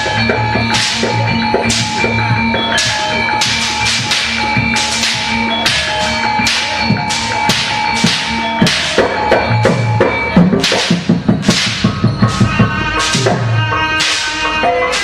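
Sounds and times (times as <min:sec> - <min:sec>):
sharp ringing metallic strikes: 0:00.0 - 0:14.0
sustained high tones: 0:00.0 - 0:15.0.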